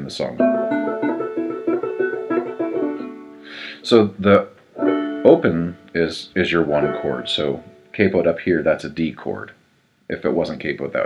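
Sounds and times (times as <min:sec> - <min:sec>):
banjo finger-picking: 0:00.0 - 0:08.4.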